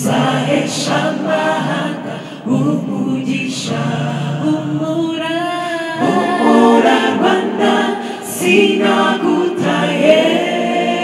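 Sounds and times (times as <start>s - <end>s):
mixed choir singing in harmony: 0.0s - 11.0s.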